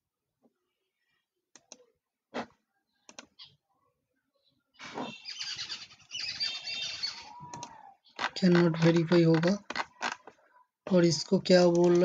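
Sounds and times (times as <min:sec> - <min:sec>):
birds chirping and squawking: 0:03.0 - 0:03.7, 0:04.4 - 0:10.2.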